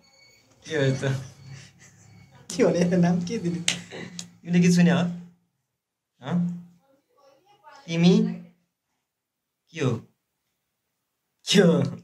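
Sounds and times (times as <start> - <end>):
man talking: 0.6 - 1.4, 2.5 - 5.3, 6.2 - 6.6, 7.9 - 8.4, 9.7 - 10.1, 11.4 - 12.0.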